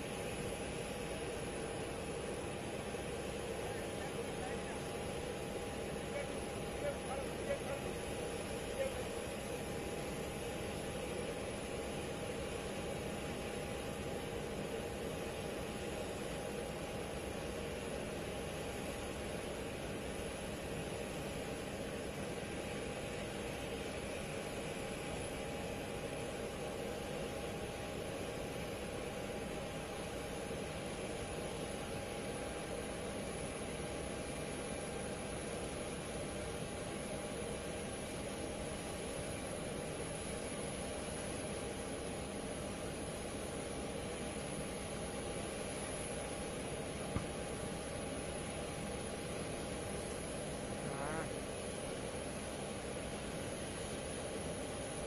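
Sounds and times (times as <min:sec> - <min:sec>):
faint constant whine: 0:00.0 - 0:55.0.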